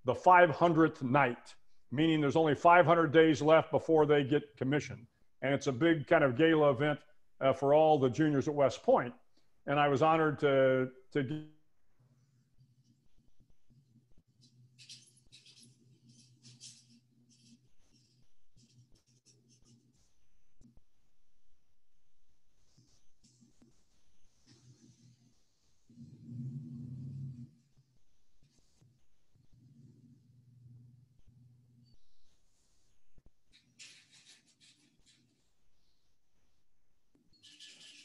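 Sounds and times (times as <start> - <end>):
faint scratching: 12.1 - 20.8, 22.5 - 38.0.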